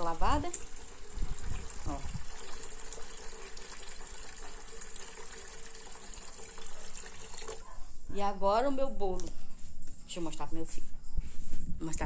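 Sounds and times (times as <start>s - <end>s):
tap water pouring into metal pan: 0.0s - 7.6s.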